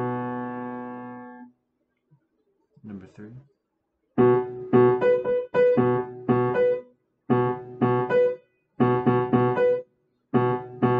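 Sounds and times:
upright piano chord: 0:04.2 - 0:09.8, 0:10.4 - 0:10.9.

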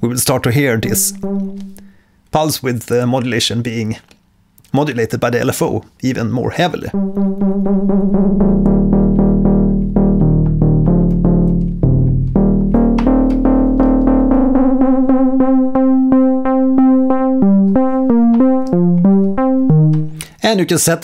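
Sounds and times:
synthesizer bass notes: 0:00.7 - 0:02.0, 0:06.9 - 0:20.4
low synth note held: 0:00.8 - 0:02.0.

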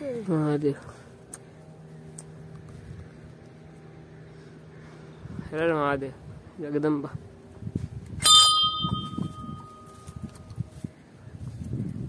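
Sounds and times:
brass bell ringing: 0:08.2 - 0:10.2.

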